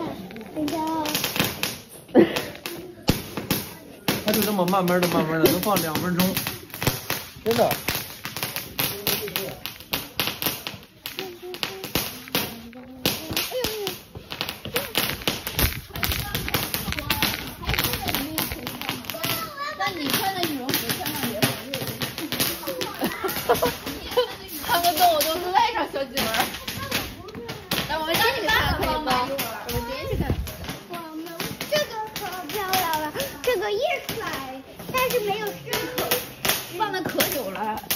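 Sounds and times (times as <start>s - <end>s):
fireworks crackling: 0.0s - 37.9s
people talking over one another: 0.0s - 37.9s.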